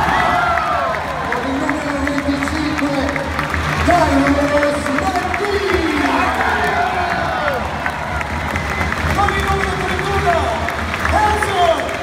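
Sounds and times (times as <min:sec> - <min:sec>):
crowd noise: 0:00.0 - 0:12.0
announcer voice over loudspeaker: 0:01.3 - 0:06.3.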